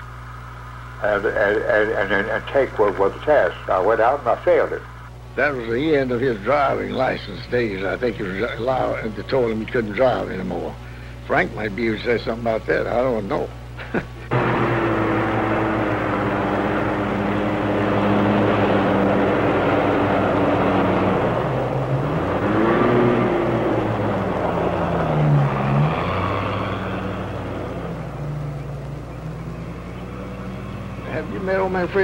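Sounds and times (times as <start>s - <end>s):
car driving past: 14.3s - 31.9s.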